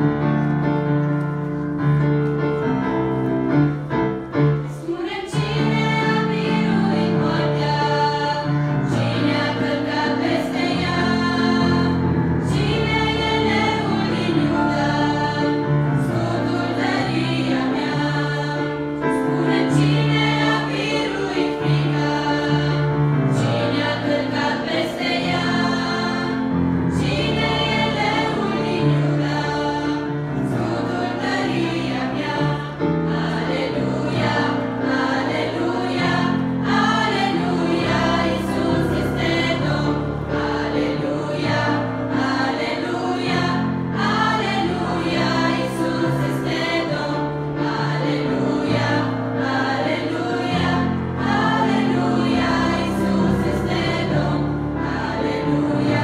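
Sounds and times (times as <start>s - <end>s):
choir singing a hymn: 2.6s - 56.0s.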